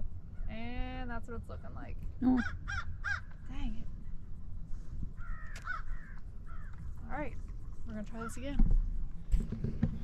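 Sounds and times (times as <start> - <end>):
steady low rumble: 0.0 - 10.0
birds cawing: 2.3 - 3.4, 5.2 - 6.9.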